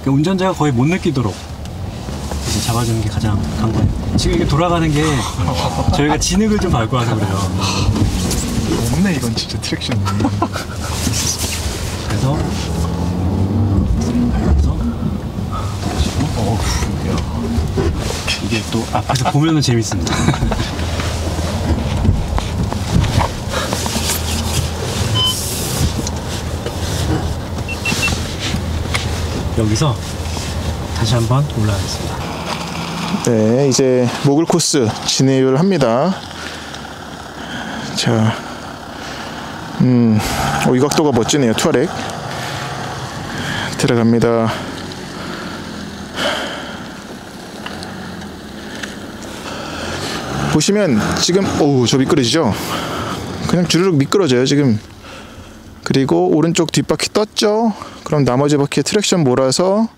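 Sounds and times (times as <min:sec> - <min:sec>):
body and suspension rattles: 0:00.0 - 0:59.7
outdoor noise: 0:00.0 - 0:59.9
low engine drone: 0:01.6 - 0:55.9.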